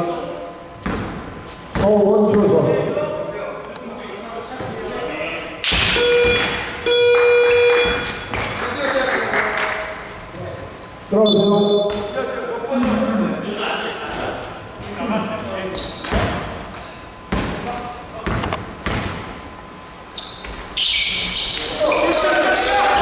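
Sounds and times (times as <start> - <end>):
electronic buzzer tone: 5.9 - 8.3
voices: 20.8 - 23.0.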